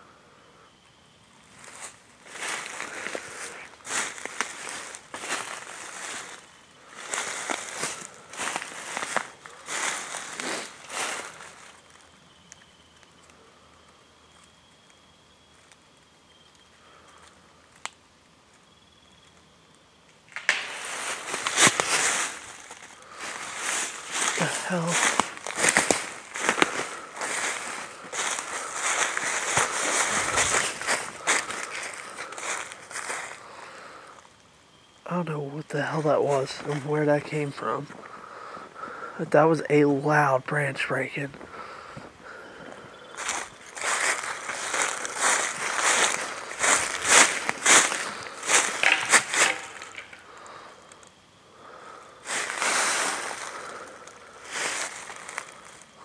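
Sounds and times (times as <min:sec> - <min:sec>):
footsteps crunching dry leaves: 0:01.6 - 0:12.0, 0:20.4 - 0:33.5, 0:41.3 - 0:50.6, 0:52.2 - 0:56.0
sharp snap: 0:20.3 - 0:20.8.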